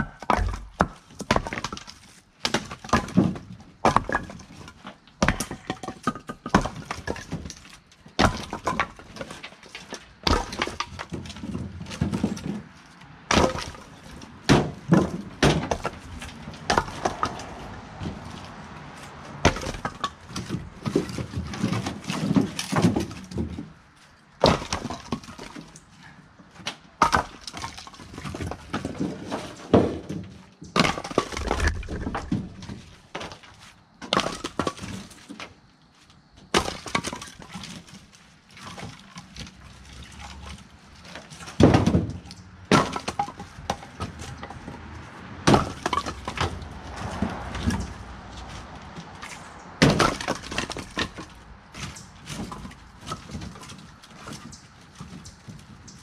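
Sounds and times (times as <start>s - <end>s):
logs clattering onto concrete: 0.0s - 56.0s.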